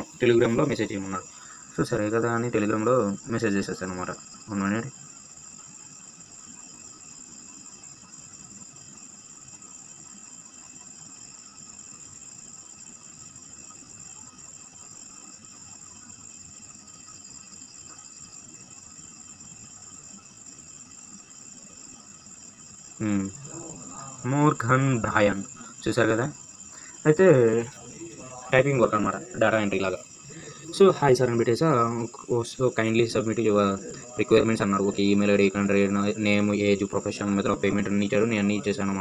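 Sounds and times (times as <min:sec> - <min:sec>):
faint background noise: 0:00.0 - 0:39.0
high-pitched whine: 0:00.0 - 0:39.0.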